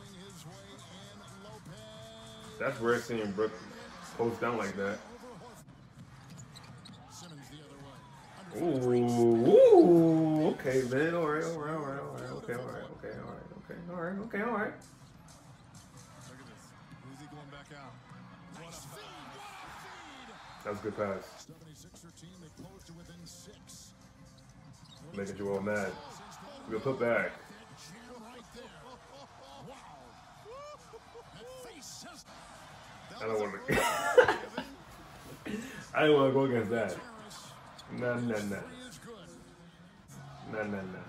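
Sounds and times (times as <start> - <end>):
arena crowd noise: 0.0 - 41.0
commentator talking: 25.2 - 28.2, 35.5 - 39.0.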